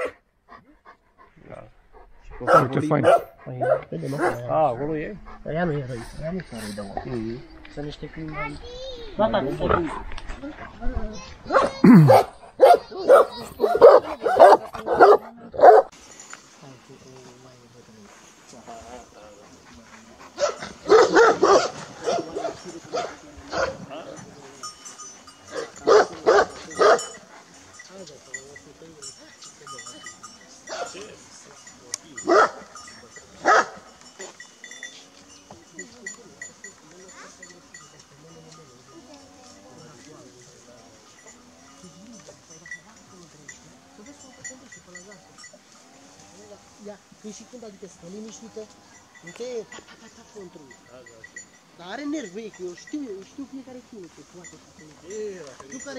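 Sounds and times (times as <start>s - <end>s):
large dog barking loudly: 0.0s - 0.2s, 2.4s - 4.8s, 11.5s - 15.9s, 20.3s - 23.8s, 25.5s - 27.3s, 32.2s - 32.8s, 33.4s - 33.9s.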